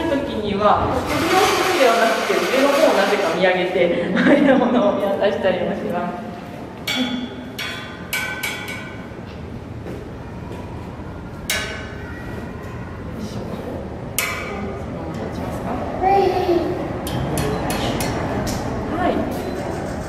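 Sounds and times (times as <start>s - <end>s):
low background murmur: 8.7s - 20.0s.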